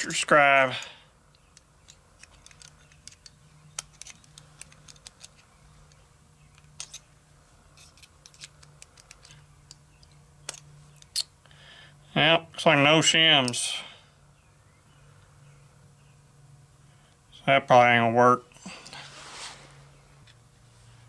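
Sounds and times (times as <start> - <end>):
small metallic clicks and taps: 0.6 - 7.1, 7.8 - 11.3.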